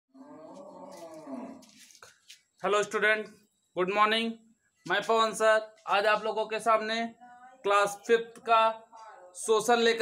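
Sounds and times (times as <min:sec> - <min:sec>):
cow mooing: 0:00.2 - 0:01.6.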